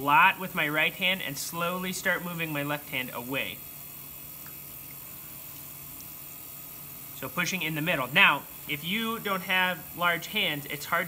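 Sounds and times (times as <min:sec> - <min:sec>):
pottery wheel with wet clay hissing: 0:00.0 - 0:11.0.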